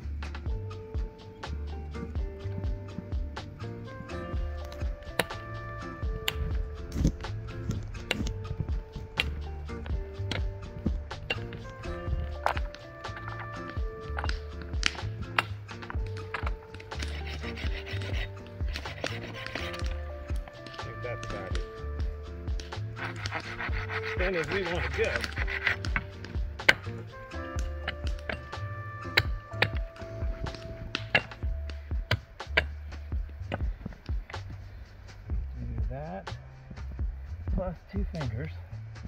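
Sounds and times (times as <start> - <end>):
background music with steady beat: 0.0 - 39.0.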